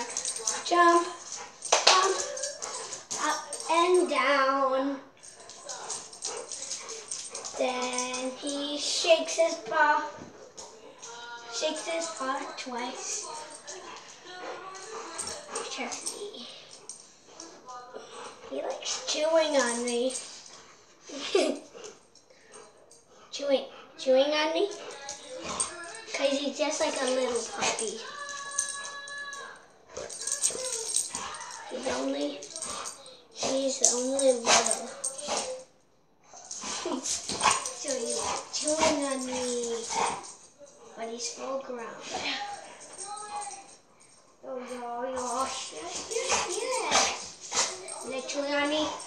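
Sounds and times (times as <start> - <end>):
dog moving about: 5.3 - 8.5, 24.7 - 29.0, 36.6 - 40.4.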